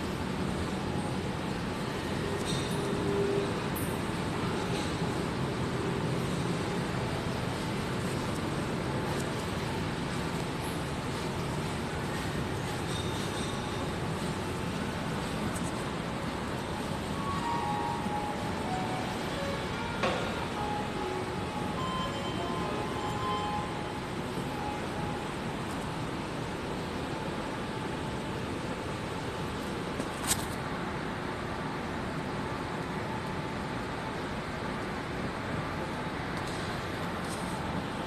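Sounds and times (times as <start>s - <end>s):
hotel lobby ambient noise: 0.0s - 38.0s.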